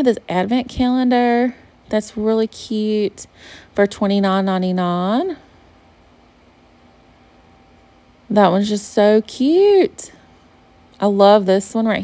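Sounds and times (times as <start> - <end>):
faint background hiss: 0.0 - 12.0
low even hum: 0.0 - 12.0.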